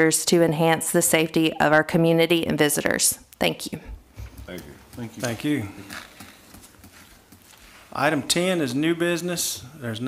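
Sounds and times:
footsteps on hard floor: 0:04.1 - 0:07.9.

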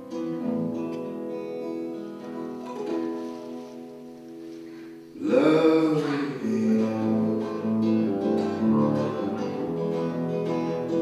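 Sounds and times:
acoustic guitar chord ringing: 0:00.0 - 0:11.0.

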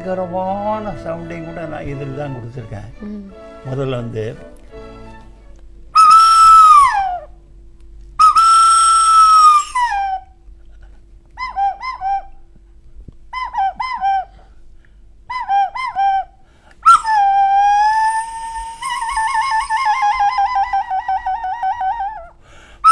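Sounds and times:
person whistling: 0:06.0 - 0:07.3, 0:08.2 - 0:10.3, 0:11.4 - 0:12.4, 0:13.3 - 0:14.5, 0:15.3 - 0:22.9.

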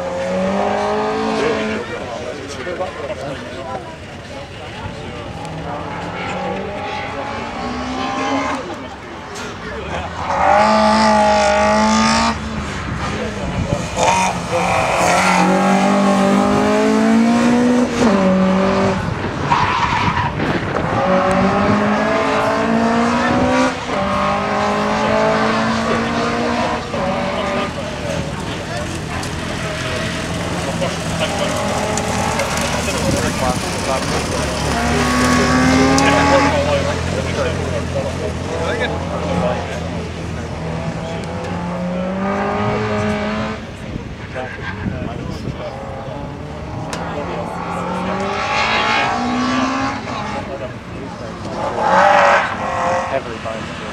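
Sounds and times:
car engine accelerating hard: 0:00.0 - 0:53.9.

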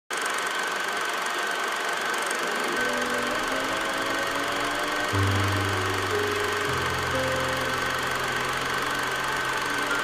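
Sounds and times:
film projector whirring: 0:00.1 - 0:10.0
high whine: 0:02.3 - 0:10.0.

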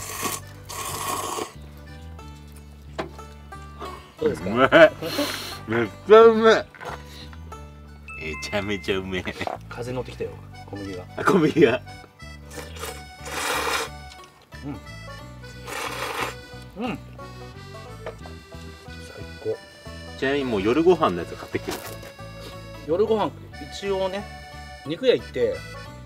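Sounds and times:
man slurping noodles: 0:00.0 - 0:01.6, 0:12.6 - 0:14.2, 0:15.6 - 0:16.4
background music: 0:00.0 - 0:26.0.

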